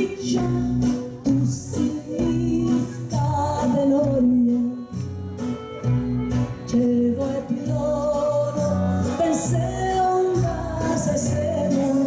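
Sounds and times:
woman singing into microphone: 0.0s - 5.2s, 6.5s - 12.0s
live band with plucked strings: 0.0s - 12.0s.

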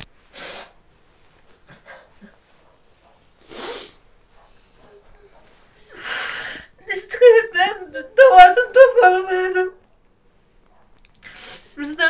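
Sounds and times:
loud noisy breath: 3.4s - 4.0s, 5.9s - 6.8s, 11.2s - 11.8s
person sobbing: 5.8s - 9.8s.

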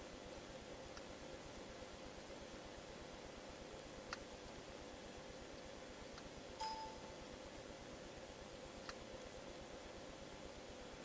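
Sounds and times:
steady low hum: 0.0s - 11.0s
click: 5.6s - 6.8s.

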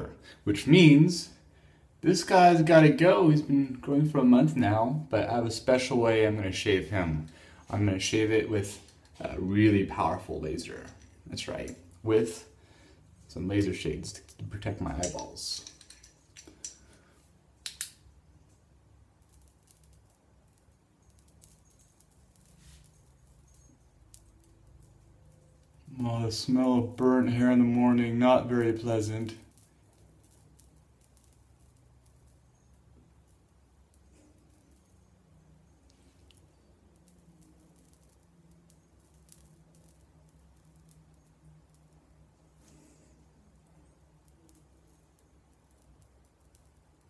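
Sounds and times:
hair crackling as burned: 2.0s - 47.0s.

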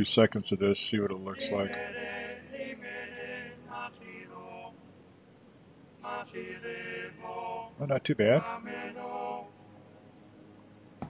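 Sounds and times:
man making wordless vocal sounds: 0.9s - 1.9s.

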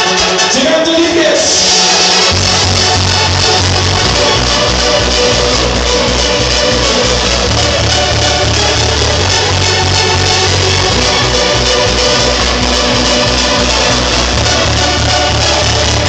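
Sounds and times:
electronic dance music: 0.0s - 16.0s.

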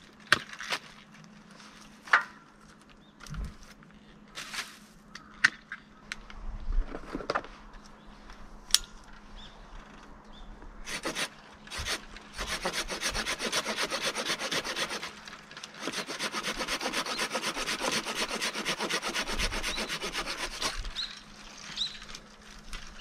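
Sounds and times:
hand saw rasping through branch: 10.9s - 21.1s.

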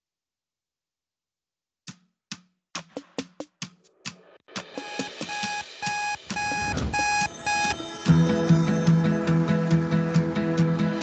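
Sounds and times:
digital alarm clock beeping: 4.7s - 7.9s
acoustic guitar music: 6.3s - 11.0s.

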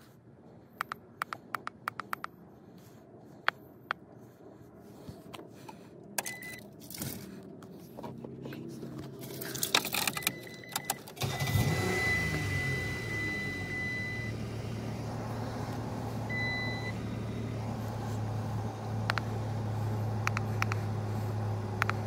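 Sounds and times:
car engine starting and idling: 0.4s - 22.0s
keys jangling in ignition: 9.1s - 11.4s.

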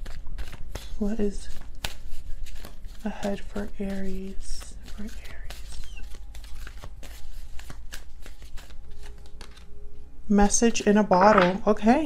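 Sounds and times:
cards being shuffled: 0.0s - 9.7s.

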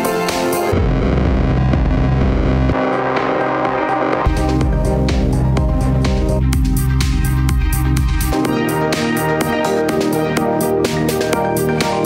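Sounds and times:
gritty bass-heavy electronic music: 0.0s - 12.0s.

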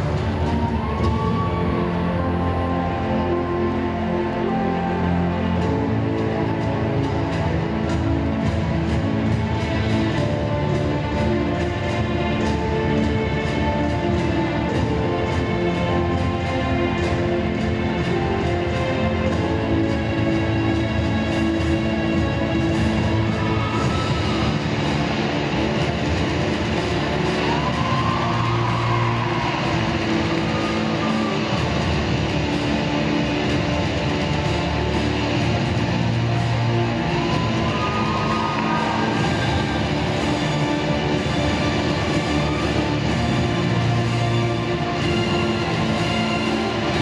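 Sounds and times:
loud accompaniment music: 0.0s - 47.0s.

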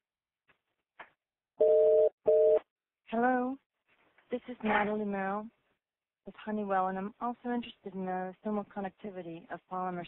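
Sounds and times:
two-note telephone tone: 1.6s - 2.6s.

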